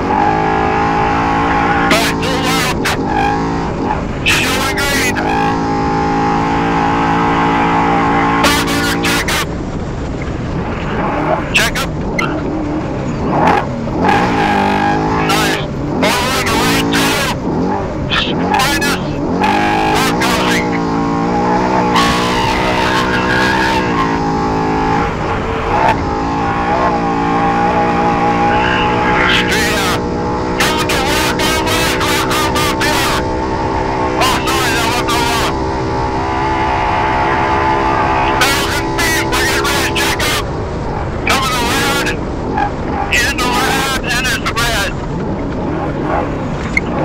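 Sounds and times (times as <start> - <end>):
truck engine running hard: 0.0 - 47.0
high whine: 14.1 - 45.0.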